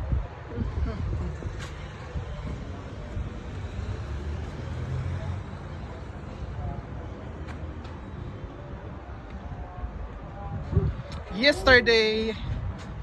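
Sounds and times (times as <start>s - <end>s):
low urban rumble: 0.0s - 13.0s.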